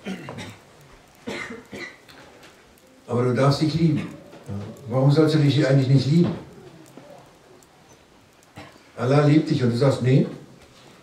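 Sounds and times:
room hiss: 0:00.0 - 0:11.0
man talking: 0:03.1 - 0:06.5, 0:09.0 - 0:10.5.

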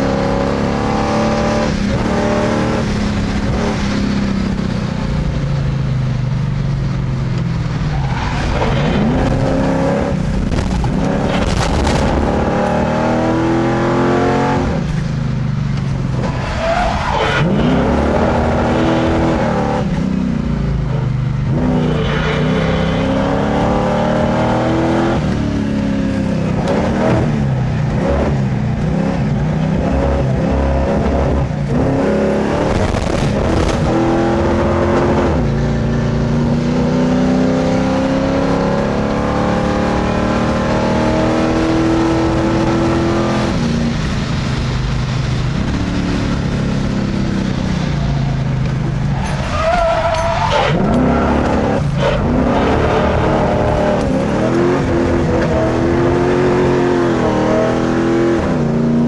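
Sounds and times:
car engine at full throttle: 0:00.0 - 0:59.0
tyres squealing: 0:49.1 - 0:52.6.

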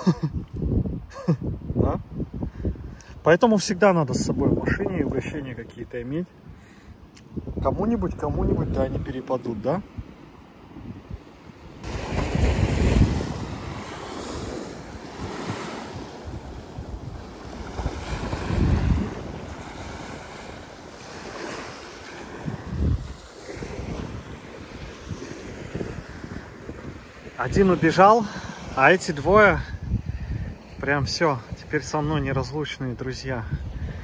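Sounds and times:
wind buffeting microphone: 0:00.0 - 0:34.0
waves washing onto sandy shore: 0:06.2 - 0:32.0.

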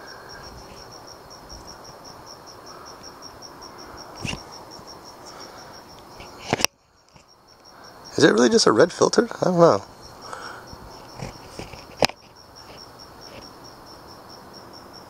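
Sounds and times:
cricket chirping: 0:00.0 - 0:15.0.

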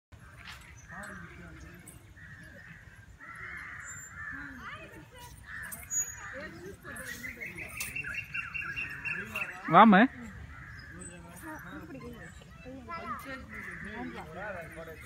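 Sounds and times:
birds calling: 0:00.2 - 0:15.0.

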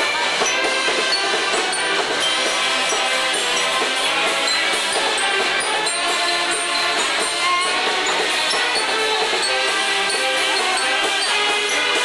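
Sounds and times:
string band playing banjos and saxophones: 0:00.0 - 0:12.0.

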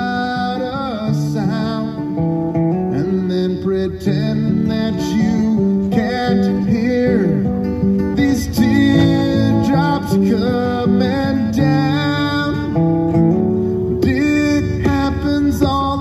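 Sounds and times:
acoustic guitar playing: 0:00.0 - 0:16.0.

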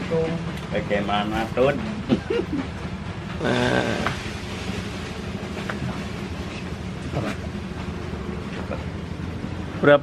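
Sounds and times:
engine droning: 0:00.0 - 0:10.0.

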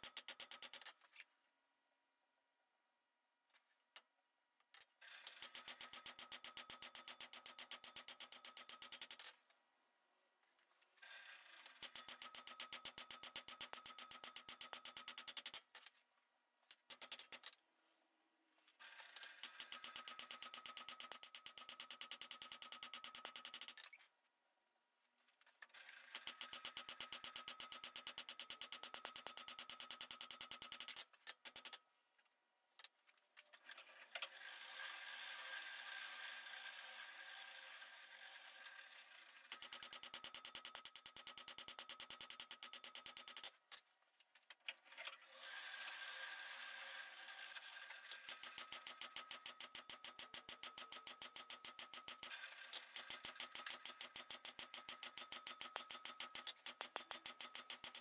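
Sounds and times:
hammer striking hot metal on anvil: 0:48.2 - 0:58.0.

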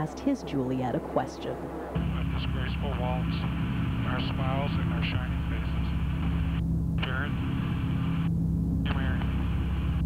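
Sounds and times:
engines droning: 0:00.0 - 0:10.0.

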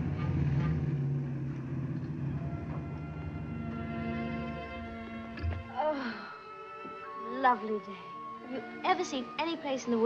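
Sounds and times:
car engine running: 0:00.0 - 0:04.8
soft orchestral tones: 0:01.7 - 0:10.0.

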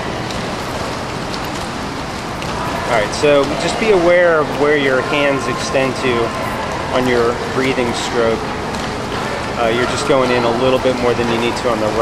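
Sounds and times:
swimmer splashing water: 0:00.0 - 0:12.0.

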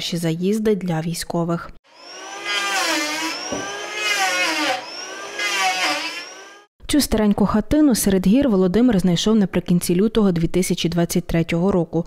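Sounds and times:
electric hand planer whining: 0:01.9 - 0:06.7.

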